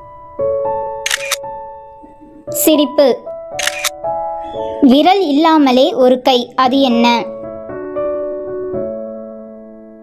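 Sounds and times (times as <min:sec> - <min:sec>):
camera shutter click: 0:01.1 - 0:01.4, 0:03.6 - 0:03.9
person speaking: 0:02.0 - 0:03.9.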